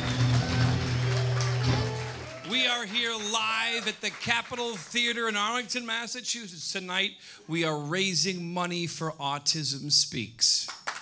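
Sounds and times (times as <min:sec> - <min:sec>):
live band playing: 0:00.0 - 0:02.5.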